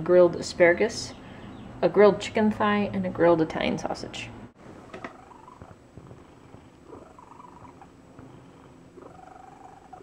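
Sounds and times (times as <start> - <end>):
cat purring with a wheeze: 4.8 - 10.0.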